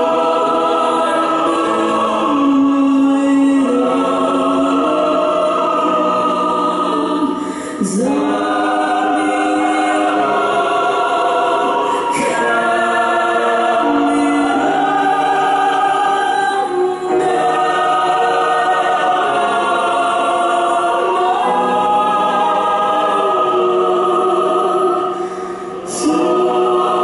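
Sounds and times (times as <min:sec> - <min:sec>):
mixed choir singing chords: 0:00.0 - 0:27.0.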